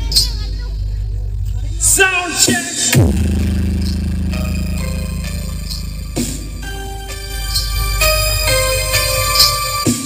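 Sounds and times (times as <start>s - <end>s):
electronic dance music: 1.7s - 10.0s.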